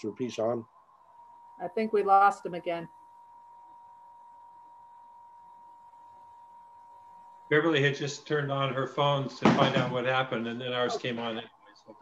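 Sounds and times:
faint hiss: 0:07.5 - 0:11.4.

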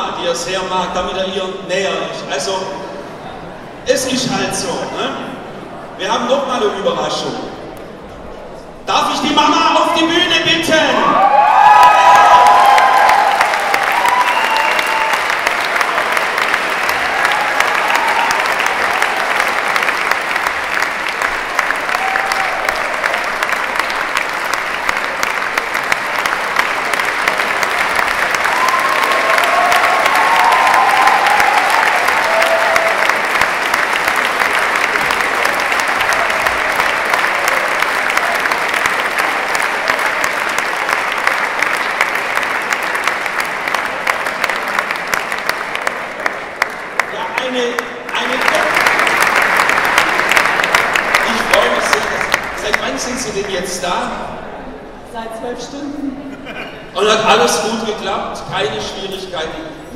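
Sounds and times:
large audience applauding: 0:10.9 - 0:53.7.

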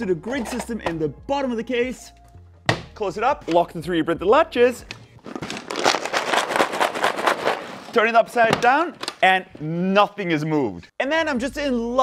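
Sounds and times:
contents rattling in shaken case: 0:05.2 - 0:07.9.

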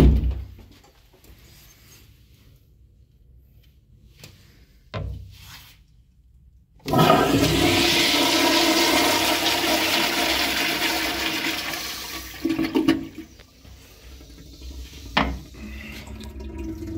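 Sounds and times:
toilet flushing: 0:06.8 - 0:16.9.

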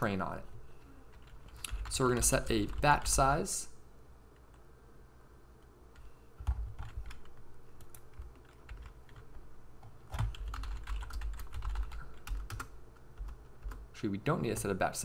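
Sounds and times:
typing on computer keyboard: 0:06.0 - 0:13.8.

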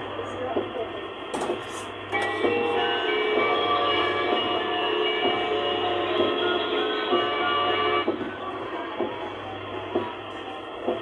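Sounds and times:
electronic kiddie ride music: 0:02.1 - 0:11.0.

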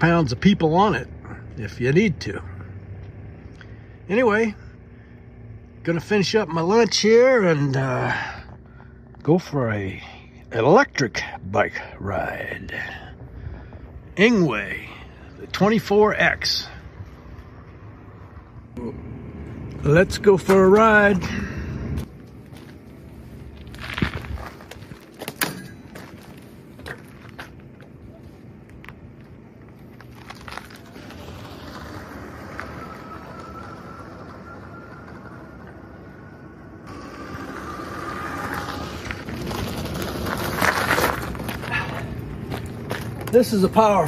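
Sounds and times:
tyre noise on gravel: 0:19.7 - 0:44.0
bike crunching on gravel: 0:22.0 - 0:44.0
electric motor whine: 0:31.0 - 0:39.7.

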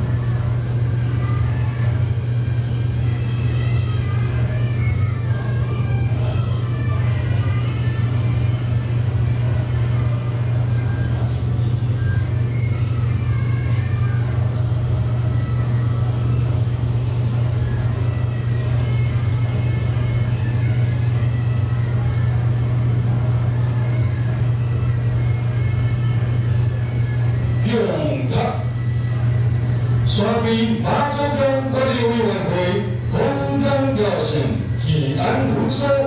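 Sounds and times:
faint voices: 0:00.0 - 0:36.0
steady low hum: 0:00.0 - 0:36.0.

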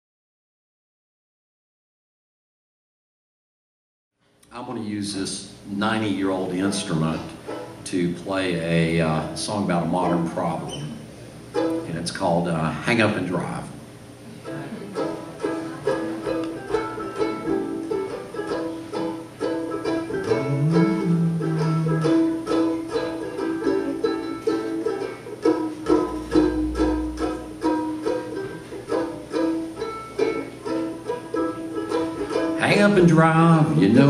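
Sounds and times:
banjo ukulele strummed and picked: 0:06.7 - 0:09.3, 0:11.5 - 0:12.0, 0:14.4 - 0:34.0.

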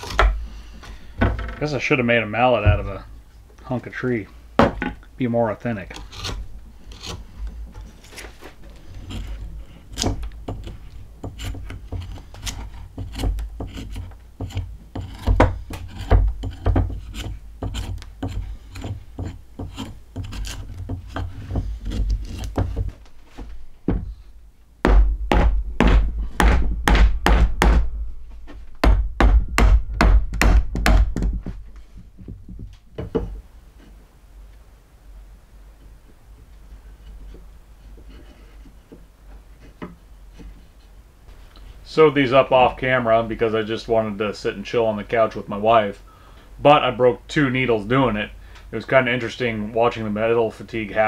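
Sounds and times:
hatchet hewing wood: 0:00.0 - 0:00.4, 0:05.9 - 0:23.0, 0:24.8 - 0:27.9, 0:28.8 - 0:31.5
knife shaving a stick: 0:05.9 - 0:22.9.

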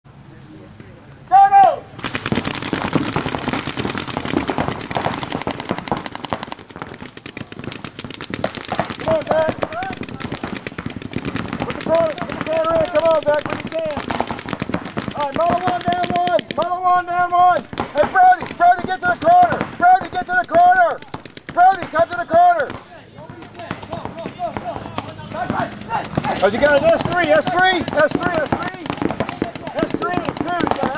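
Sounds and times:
players shouting: 0:01.3 - 0:02.0, 0:08.6 - 0:30.9
paintball markers firing rapidly: 0:02.0 - 0:30.9.

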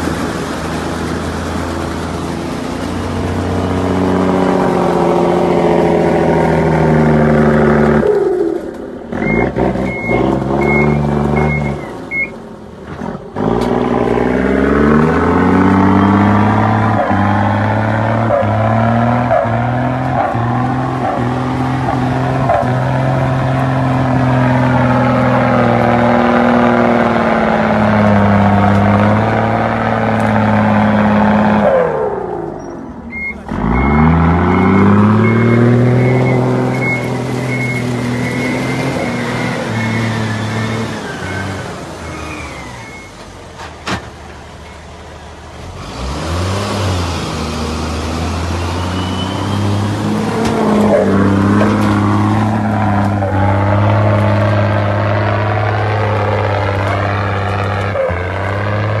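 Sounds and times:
bus diesel engine revving: 0:00.0 - 0:59.0
high beeper: 0:33.1 - 0:37.9.

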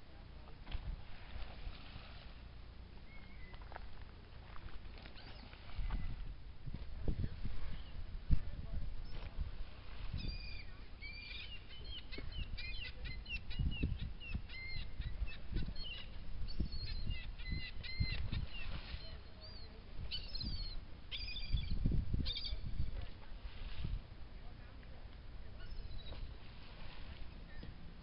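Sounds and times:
seabirds calling: 0:03.0 - 0:03.8, 0:05.0 - 0:06.3, 0:10.1 - 0:22.7, 0:25.6 - 0:27.8.

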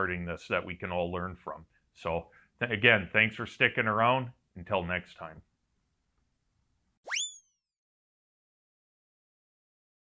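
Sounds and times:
cartoon whoop sound effect: 0:07.1 - 0:07.5.

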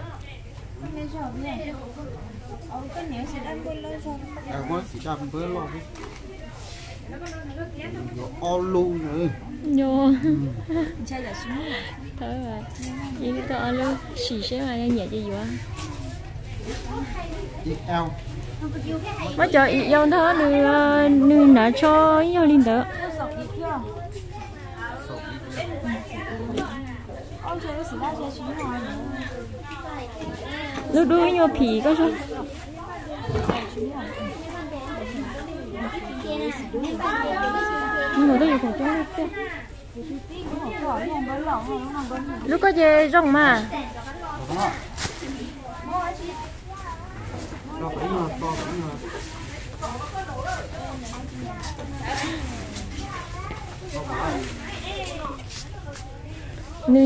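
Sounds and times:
people talking at once: 0:00.0 - 0:57.0.

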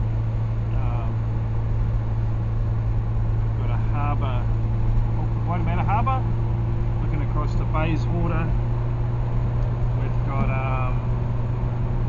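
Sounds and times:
car engine and tyres droning: 0:00.0 - 0:12.0.

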